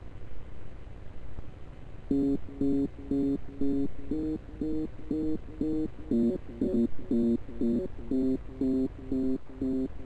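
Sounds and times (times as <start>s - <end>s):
synthesizer riff: 2.1s - 10.0s.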